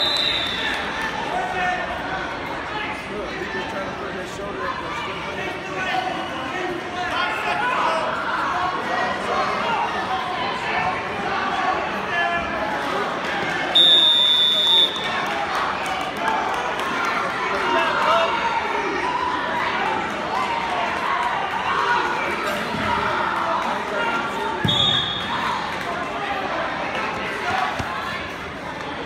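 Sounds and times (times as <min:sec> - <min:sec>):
spectators chatting: 0:00.0 - 0:29.0.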